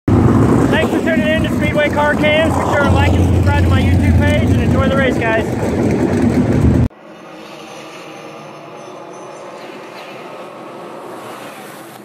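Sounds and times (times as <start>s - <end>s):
race car engines rumbling: 0.1s - 12.0s
man talking: 0.7s - 5.5s.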